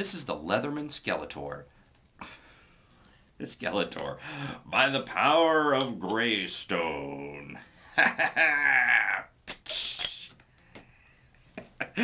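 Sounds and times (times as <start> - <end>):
man's drawn-out vocal sound: 8.5 - 10.4
bottle cap click and hiss: 9.5 - 10.4.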